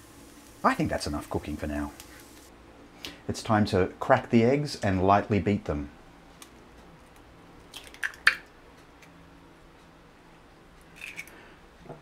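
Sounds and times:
egg cracking: 6.4 - 9.2, 10.8 - 11.4.

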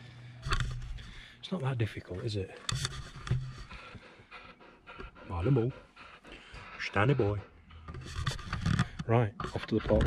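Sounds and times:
dog panting: 1.0 - 8.8.

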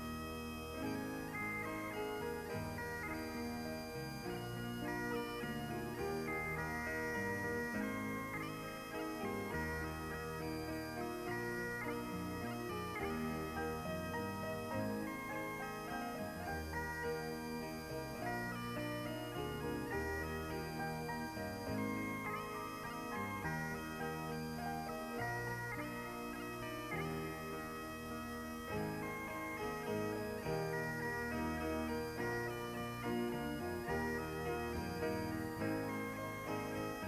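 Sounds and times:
bagpipe chanter melody: 0.0 - 37.0
bagpipe drones: 0.0 - 37.0.

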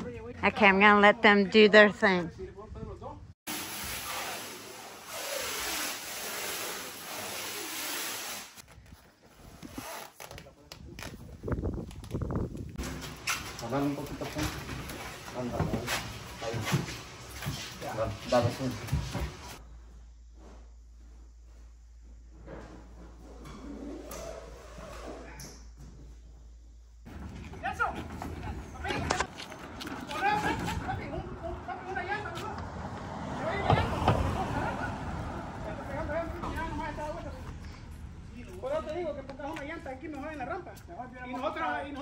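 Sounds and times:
people talking: 33.3 - 37.7.

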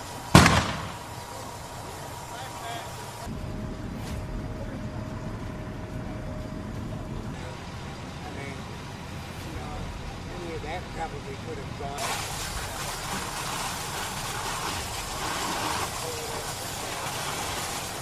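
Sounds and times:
fire scene noise: 0.0 - 18.0
loud sharp bang: 0.3 - 1.1.

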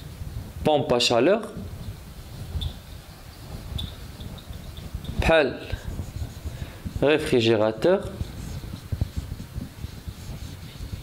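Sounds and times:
low background rumble: 1.6 - 11.0
marker squeaking on whiteboard: 1.8 - 7.4, 8.0 - 11.0.

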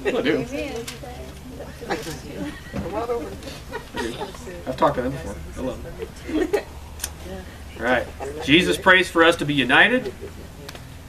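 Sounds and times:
people talking: 0.0 - 10.8.

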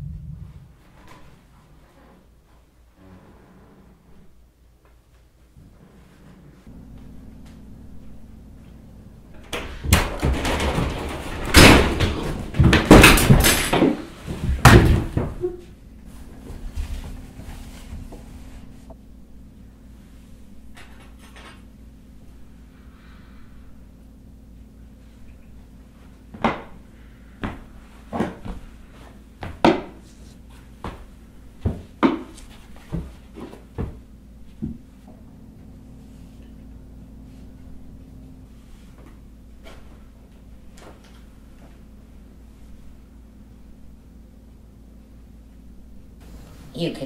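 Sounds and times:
heavy footsteps: 26.3 - 35.2.

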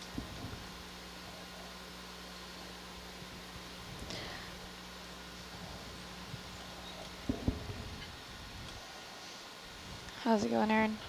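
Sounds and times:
faint electrical hum: 0.0 - 11.0
short low knocks: 7.0 - 8.2.

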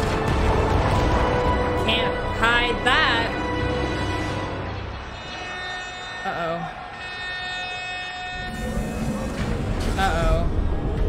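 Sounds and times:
ominous held chord: 0.4 - 9.6.

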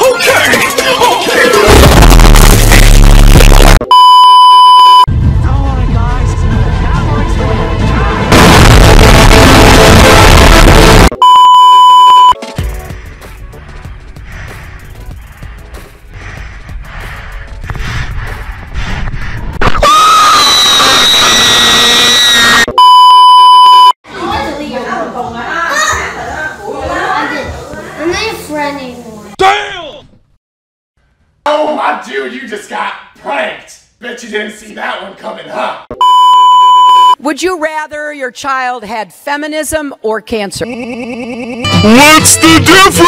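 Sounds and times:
loud music with heavy bass: 0.2 - 3.9, 7.6 - 11.2
high beep tone: 3.8 - 5.1, 11.1 - 12.4, 22.7 - 24.0, 36.0 - 37.2
loud distorted scream: 8.3 - 11.1, 19.6 - 22.7.

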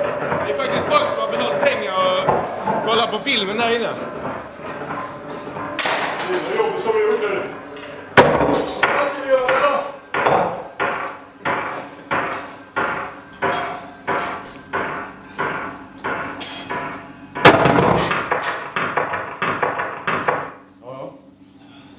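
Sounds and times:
harsh electronic noise music: 0.0 - 10.0.

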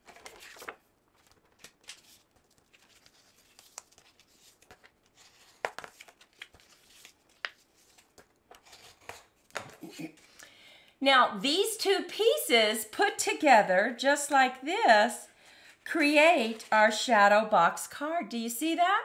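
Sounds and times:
paper rustling: 0.0 - 10.4.

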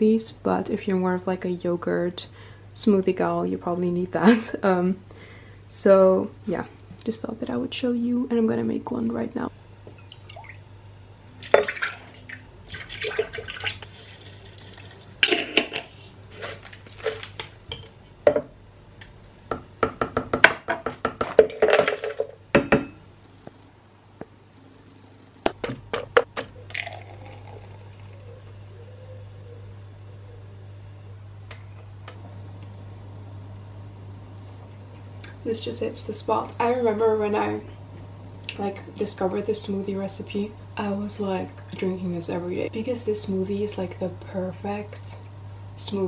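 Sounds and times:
faint steady hum: 0.0 - 46.0
milk pouring into steel cup: 26.7 - 28.2.

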